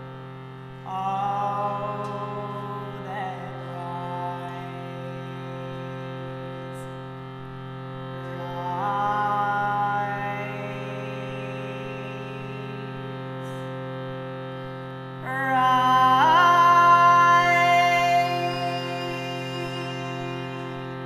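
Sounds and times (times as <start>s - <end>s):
harmonium melody notes: 0.0s - 21.0s
harmonium reed drone: 0.0s - 21.0s.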